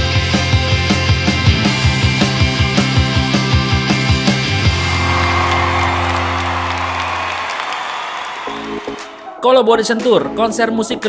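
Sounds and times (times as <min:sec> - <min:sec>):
rock music with driving beat: 0:00.0 - 0:05.6
crowd applauding and cheering: 0:04.4 - 0:09.4.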